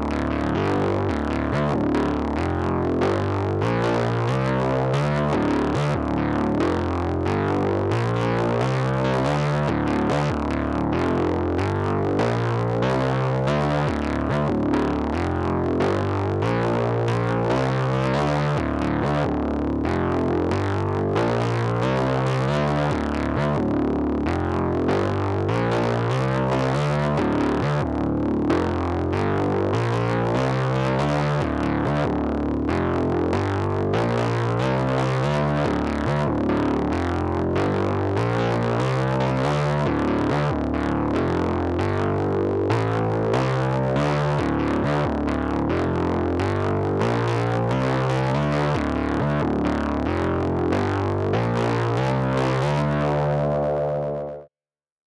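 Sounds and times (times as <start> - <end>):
low synth bass riff: 0.0 - 54.5.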